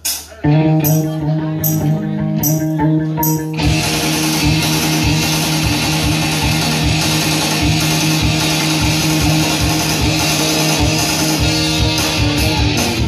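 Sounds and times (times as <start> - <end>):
live rock band: 0.0 - 13.0
loud electric guitars: 0.0 - 13.0.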